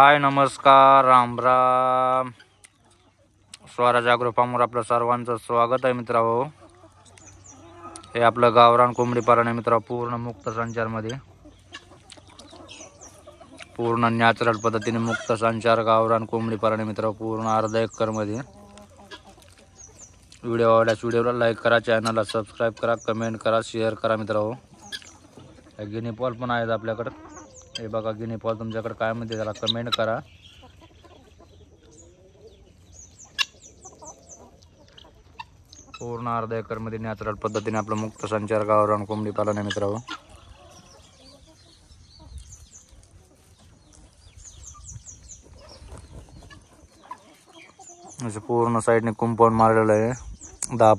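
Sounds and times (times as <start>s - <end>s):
chickens clucking faintly: 0.0s - 50.9s.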